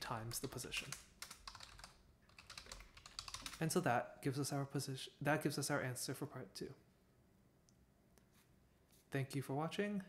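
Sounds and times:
typing on computer keyboard: 0.4s - 3.6s.

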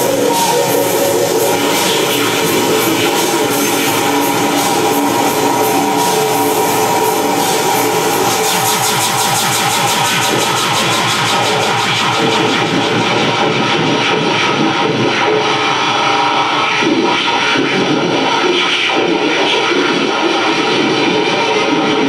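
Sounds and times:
harsh electronic noise music: 0.0s - 22.0s
pulsing engine-like throb: 0.0s - 22.0s.

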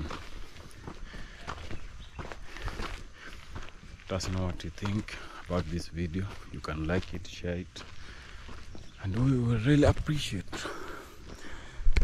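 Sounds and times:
footsteps on dirt road: 0.0s - 12.0s.

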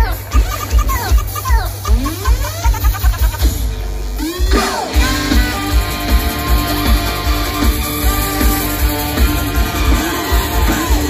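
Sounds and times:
electronic dance music: 0.0s - 11.0s
song with guitar: 0.0s - 11.0s.

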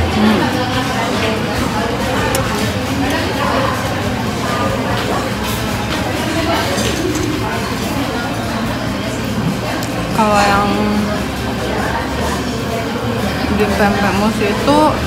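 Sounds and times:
chatter of crowd: 0.0s - 15.0s.

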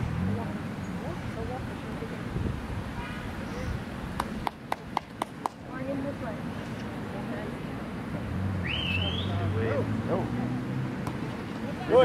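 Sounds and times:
faint outdoor voices: 0.0s - 12.0s
person clapping hands: 4.2s - 5.6s.

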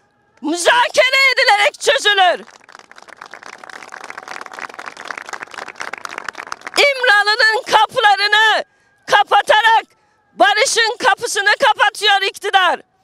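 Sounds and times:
woman speaking in high-pitched voice: 0.4s - 2.4s, 6.8s - 12.8s
small crowd applauding: 2.4s - 7.2s.

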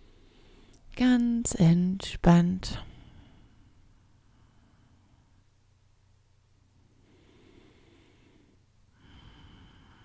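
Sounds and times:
soft breathing: 0.0s - 0.9s, 2.7s - 5.7s, 6.6s - 10.0s.

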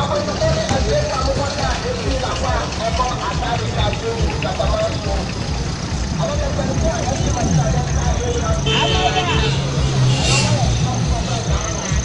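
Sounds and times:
people talking: 0.0s - 12.0s
vehicle engines idling: 0.0s - 12.0s.

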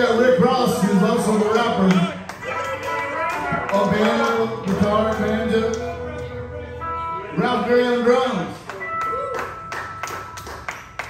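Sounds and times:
live band playing: 0.0s - 11.0s
crowd clapping: 1.4s - 6.0s, 8.5s - 11.0s.

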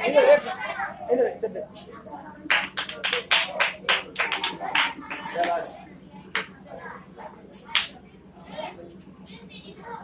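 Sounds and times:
children's voices: 0.0s - 10.0s
hand clapping: 2.5s - 5.7s, 6.3s - 6.5s, 7.7s - 8.0s.

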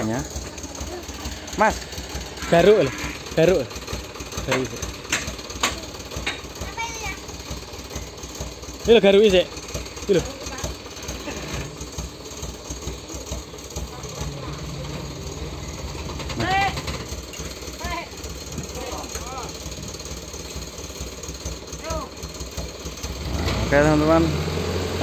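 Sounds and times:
voices calling: 0.0s - 22.8s
diesel truck engine idling: 0.0s - 25.0s.

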